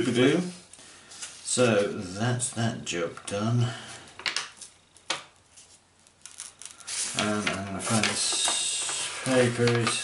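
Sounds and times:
paper rustling: 0:05.5 - 0:10.0.

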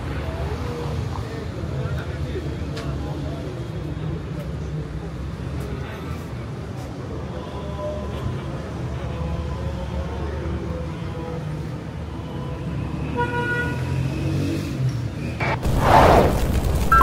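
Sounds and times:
loud whoosh: 0:15.4 - 0:17.0
low traffic rumble: 0:15.4 - 0:17.0.

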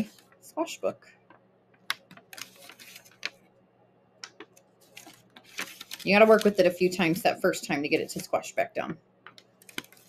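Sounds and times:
folded paper crackling and rustling: 0:02.2 - 0:03.4, 0:04.8 - 0:07.2, 0:09.6 - 0:10.0.

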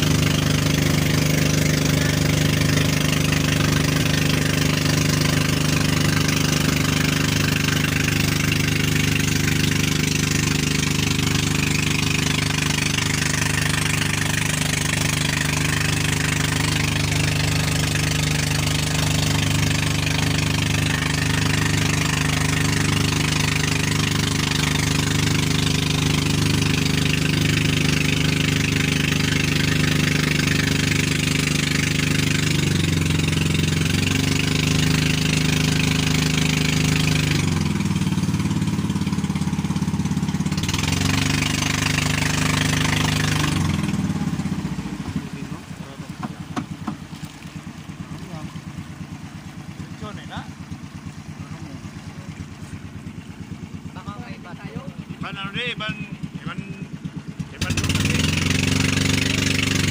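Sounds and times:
boat engine running: 0:00.0 - 0:59.9
water rushing along hull: 0:00.0 - 0:59.9.

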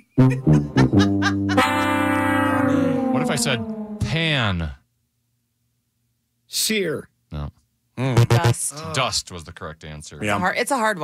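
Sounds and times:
short music sting: 0:01.6 - 0:04.2.

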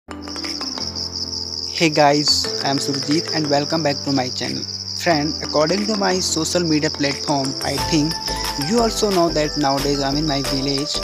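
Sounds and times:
low background music: 0:00.1 - 0:11.0
insects trilling: 0:00.2 - 0:11.0.

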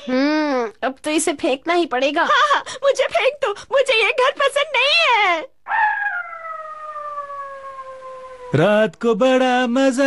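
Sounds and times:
dog howling: 0:05.7 - 0:08.7.

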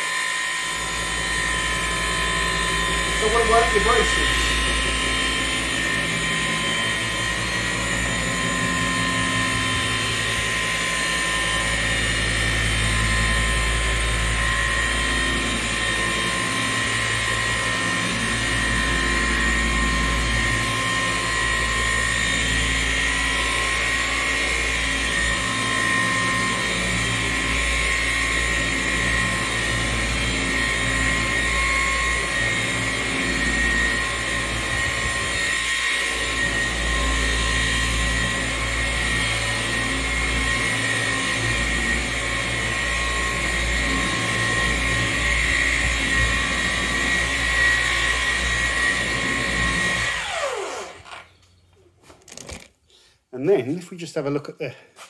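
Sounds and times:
orbital polisher whining: 0:00.0 - 0:51.7.

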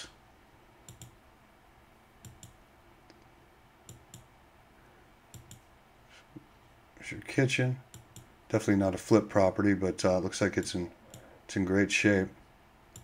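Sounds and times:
computer mouse clicking: 0:00.9 - 0:01.2, 0:02.2 - 0:03.3, 0:03.9 - 0:04.3, 0:05.3 - 0:05.6, 0:07.9 - 0:08.3, 0:11.1 - 0:11.3.

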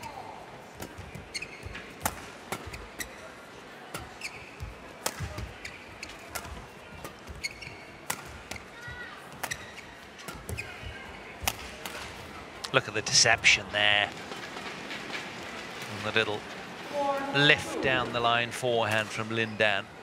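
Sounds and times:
arena crowd hum: 0:00.0 - 0:20.0
shoes squeaking on court: 0:00.9 - 0:02.0, 0:04.0 - 0:11.1.

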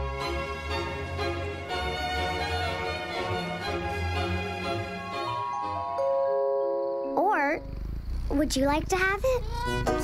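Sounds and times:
chiming mallet chord: 0:05.3 - 0:07.2
low purr: 0:07.1 - 0:10.0.

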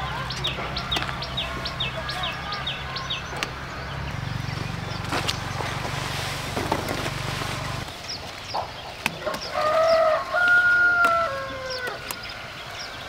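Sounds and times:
rooster crowing: 0:09.5 - 0:12.1.

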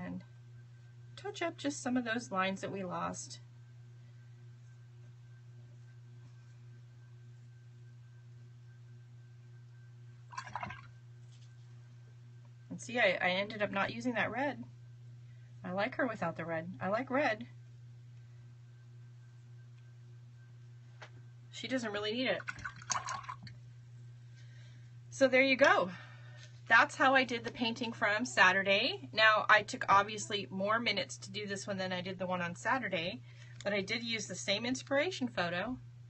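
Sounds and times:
low hum: 0:00.0 - 0:36.0.

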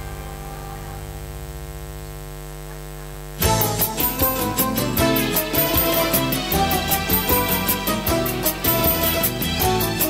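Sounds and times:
electrical mains hum: 0:00.0 - 0:05.0.

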